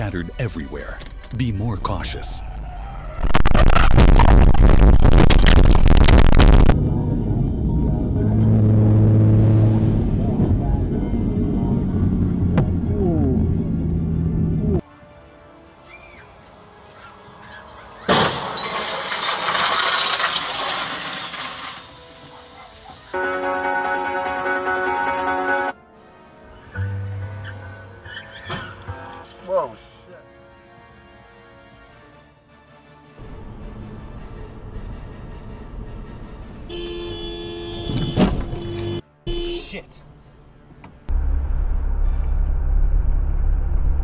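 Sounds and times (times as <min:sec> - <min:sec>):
moving car noise: 0:02.4 - 0:14.8
car crash: 0:18.0 - 0:22.2
car horn: 0:23.2 - 0:25.8, 0:36.5 - 0:39.7.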